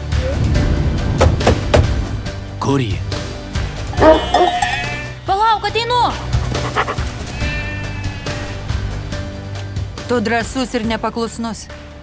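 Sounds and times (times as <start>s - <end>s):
trailer music score: 0.0s - 12.0s
dog barking: 4.0s - 4.7s, 6.4s - 7.1s.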